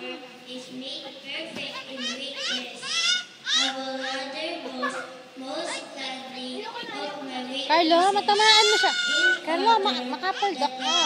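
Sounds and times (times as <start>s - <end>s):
child squealing: 2.0s - 5.1s, 8.2s - 9.6s, 10.3s - 11.0s.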